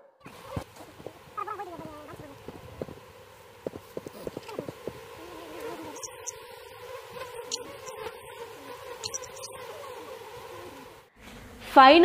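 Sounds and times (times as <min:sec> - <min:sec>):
swarm steady wavering hum: 0:00.0 - 0:11.6
bees buzzing past: 0:00.2 - 0:11.6.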